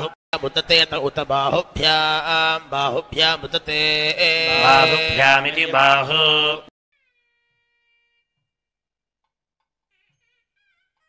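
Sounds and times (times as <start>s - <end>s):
man chanting: 0.0s - 6.7s.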